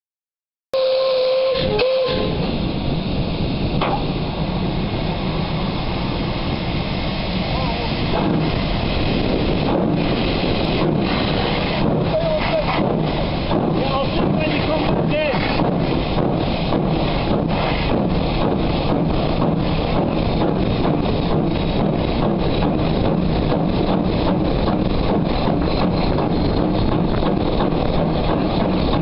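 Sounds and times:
steam locomotive whistle: 0:00.8 - 0:02.5
loud steam hiss: 0:00.8 - 0:29.0.

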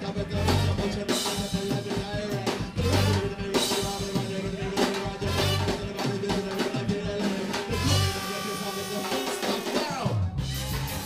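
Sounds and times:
live ska band playing: 0:00.0 - 0:11.0
person singing: 0:00.0 - 0:11.0.

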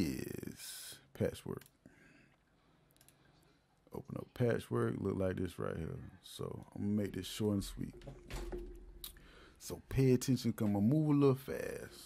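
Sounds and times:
computer mouse clicks: 0:02.9 - 0:03.3.

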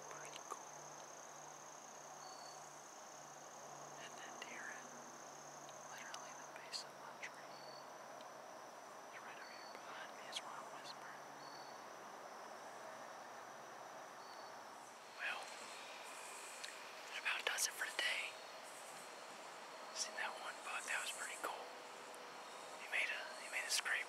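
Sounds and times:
man whispering: 0:00.0 - 0:00.7, 0:04.0 - 0:04.9, 0:05.9 - 0:07.6, 0:09.1 - 0:11.2, 0:15.2 - 0:15.5, 0:17.1 - 0:18.4, 0:19.9 - 0:21.7, 0:22.8 - 0:24.0
faint outdoor background: 0:00.0 - 0:24.0.

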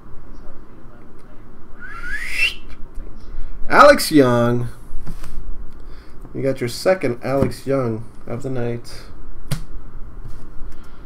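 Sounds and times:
person whistling rising pitch: 0:01.8 - 0:02.7.

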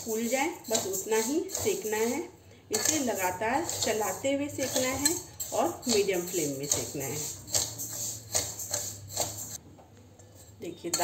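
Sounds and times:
grains rattling in pan: 0:00.0 - 0:09.6
metal spatula scraping pan: 0:00.0 - 0:09.6, 0:10.3 - 0:11.0.

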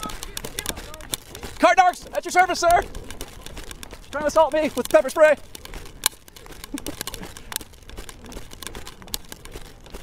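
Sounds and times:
sharp clicks: 0:00.0 - 0:10.0.

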